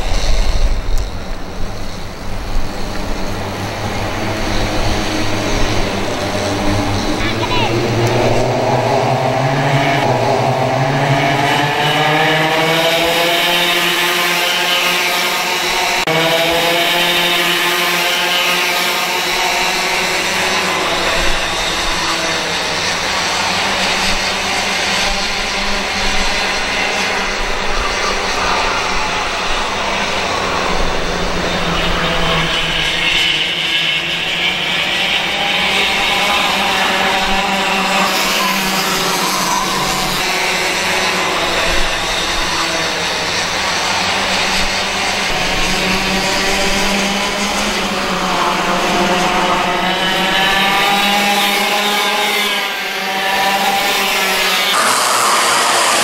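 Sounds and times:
kart engines buzzing at high revs: 0.0 - 56.0.

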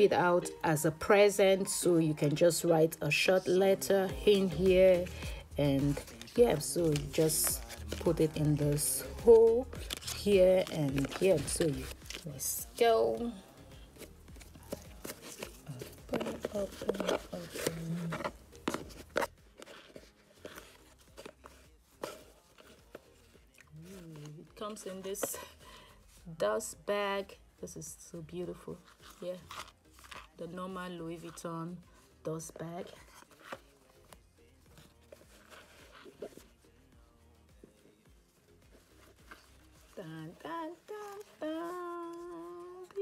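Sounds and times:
faint background music: 0.0 - 43.0
cardboard box being opened: 9.8 - 12.2, 14.0 - 23.3.

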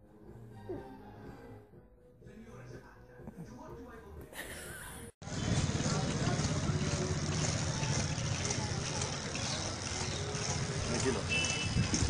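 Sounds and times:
traffic rumble: 5.2 - 12.0.

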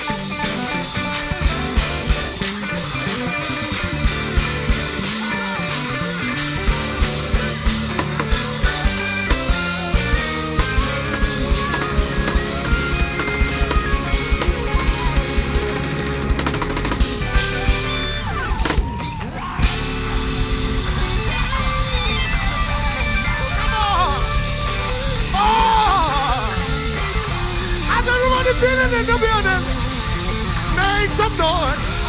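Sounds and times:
bass guitar: 0.0 - 32.0
drum kit hits and cymbals: 0.0 - 32.0
electric guitar: 0.0 - 32.0.

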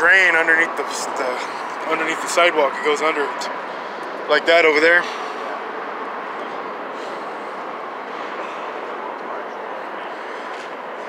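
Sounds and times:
city traffic rush: 0.0 - 11.0.

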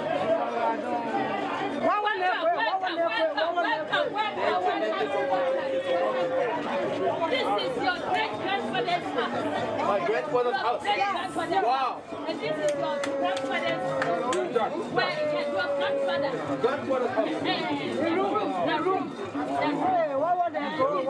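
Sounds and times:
crowd talking and calling out: 0.0 - 21.0.

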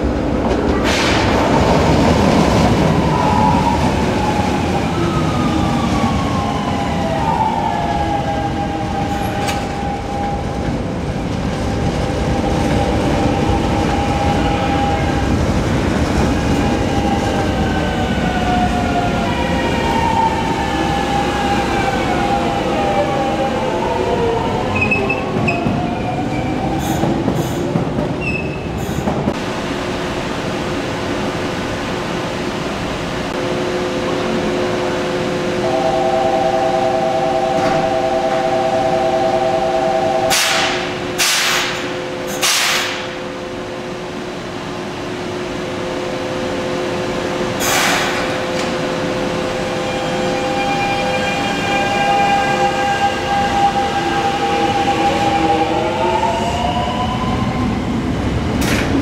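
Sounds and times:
electrical hum of stopped train: 0.0 - 59.0
rumble of train wheels: 0.0 - 59.0
train traction inverter whining: 32.6 - 59.0.

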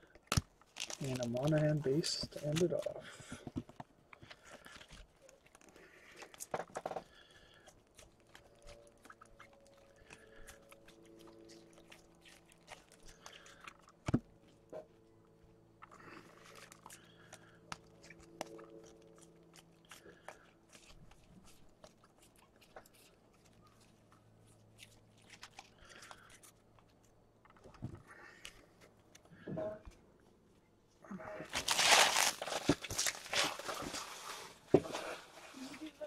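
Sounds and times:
trading cards rustling and clicking: 0.2 - 7.2.

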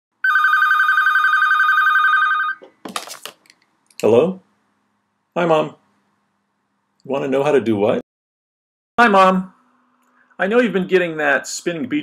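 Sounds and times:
telephone ringing: 0.2 - 2.6
phone clattering: 2.5 - 4.0.

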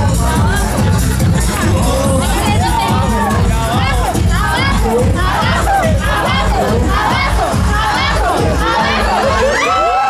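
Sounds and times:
crowd shouting and cheering: 0.0 - 10.0
loud party drumming: 0.0 - 10.0.

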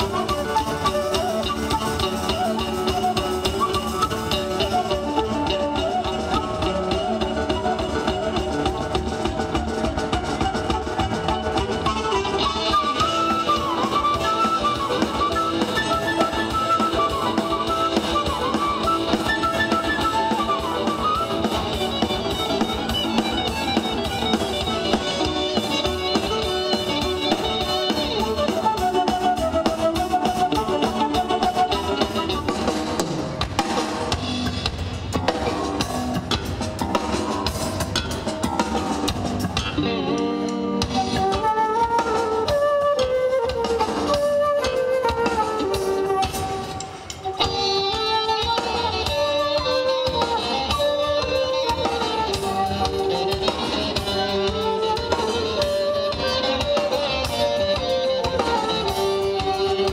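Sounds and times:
drum kit fast beat: 0.0 - 42.9, 43.5 - 59.9
live band music: 0.0 - 59.9.

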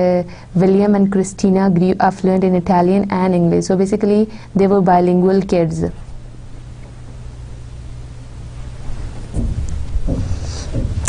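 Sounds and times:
low rumble and hum: 0.0 - 11.0
thumps: 9.2 - 11.0.

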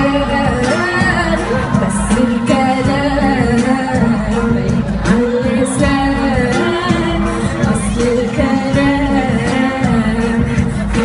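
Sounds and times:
live pop song with singing: 0.0 - 11.0.

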